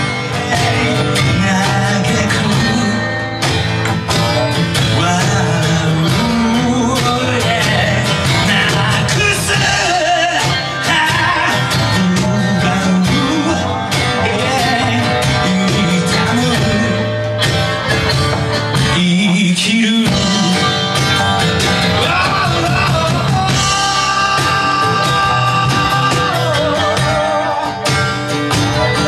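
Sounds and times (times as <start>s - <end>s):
live band music: 0.0s - 29.0s.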